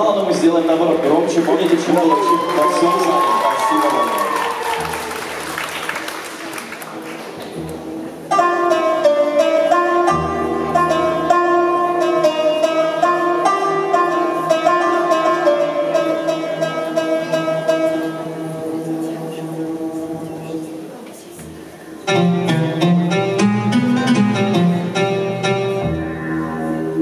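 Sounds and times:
hall noise: 0:00.0 - 0:16.8
plucked string instrument solo: 0:07.5 - 0:20.6, 0:22.1 - 0:27.0.

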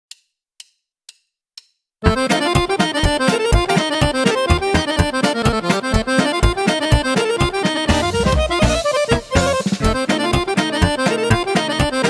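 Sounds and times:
count-in clicks: 0:02.0 - 0:12.0.

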